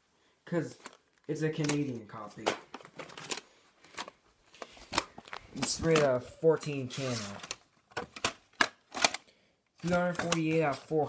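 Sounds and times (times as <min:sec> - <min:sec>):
plastic tape case clicks: 0:01.6 - 0:01.8, 0:07.4 - 0:10.6.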